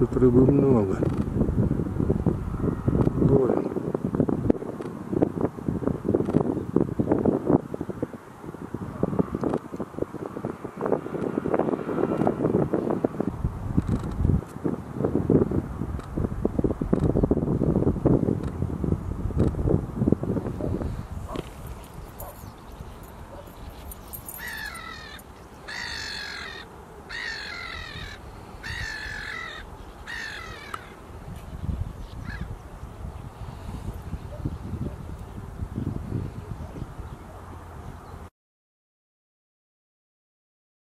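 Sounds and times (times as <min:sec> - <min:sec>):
wind buffeting microphone: 0:00.0 - 0:38.3
bird calling: 0:21.3 - 0:31.0.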